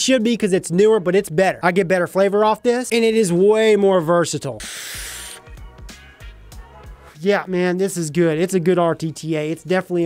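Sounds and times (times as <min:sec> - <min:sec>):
background music with steady beat: 0:00.0 - 0:10.0
air hissing through vape: 0:04.6 - 0:05.5.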